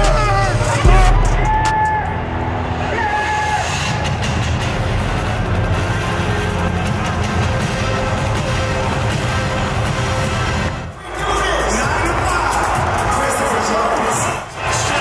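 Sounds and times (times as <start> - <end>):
dense music: 0.0 - 15.0.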